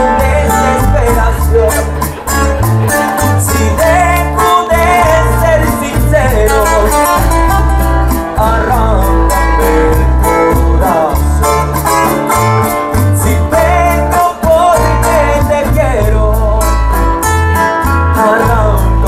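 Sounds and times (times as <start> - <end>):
man singing through microphone: 0.0 - 7.6, 8.2 - 12.0, 13.0 - 17.2, 17.8 - 19.0
acoustic guitars strumming: 0.0 - 19.0
bass notes: 0.0 - 19.0.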